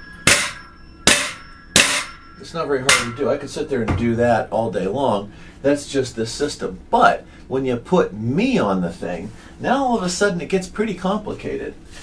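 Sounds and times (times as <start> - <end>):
metallic spring ring: 0.0 - 3.7.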